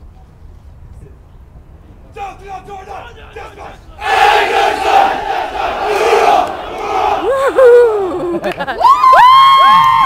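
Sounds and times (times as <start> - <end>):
group shouting in unison: 4.0 - 8.0.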